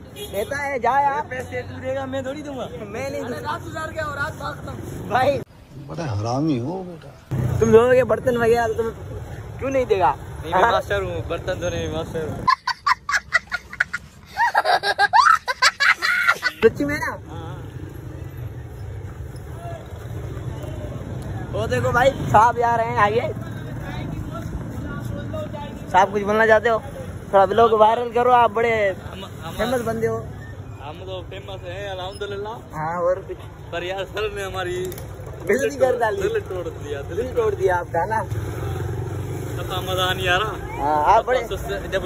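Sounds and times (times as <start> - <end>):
low traffic rumble: 0.0 - 42.0
faint voices of passers-by: 16.6 - 42.0.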